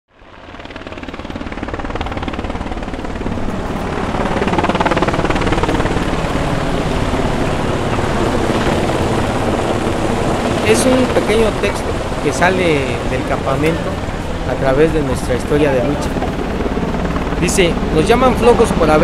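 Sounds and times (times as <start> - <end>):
rumbling drone with chopping pulse: 0.6 - 18.0.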